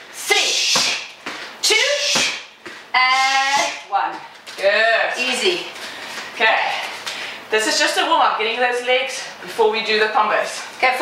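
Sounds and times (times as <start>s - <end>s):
woman counting aloud: 0.2s - 5.7s.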